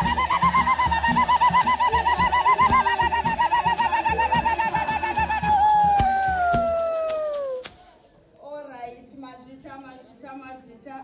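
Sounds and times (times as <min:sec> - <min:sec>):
high warbling ululation: 0:00.0 - 0:06.4
rattle and drum beat: 0:00.0 - 0:08.1.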